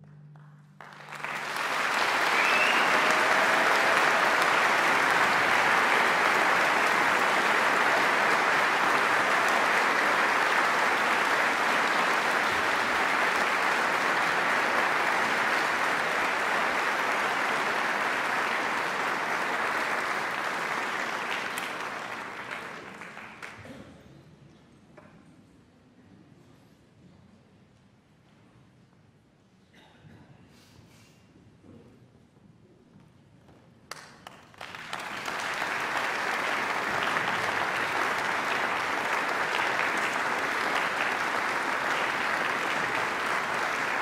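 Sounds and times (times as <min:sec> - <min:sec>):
audience applauding: 0:00.8 - 0:23.8, 0:33.9 - 0:44.0.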